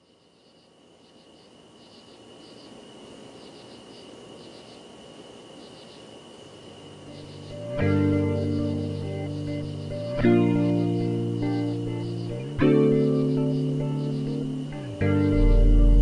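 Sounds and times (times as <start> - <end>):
insects chirping: 0.0 - 16.0
guitar-led music: 7.1 - 16.0.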